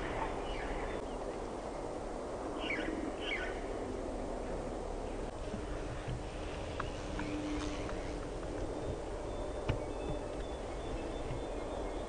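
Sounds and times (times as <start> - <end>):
background hiss: 0.0 - 12.0
low rumble: 0.0 - 12.0
bird chirps: 6.7 - 12.0.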